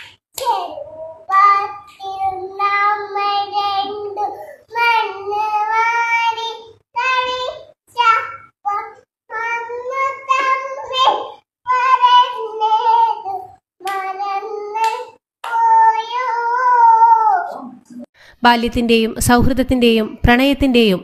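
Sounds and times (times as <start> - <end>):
girl singing: 0.4 - 18.1.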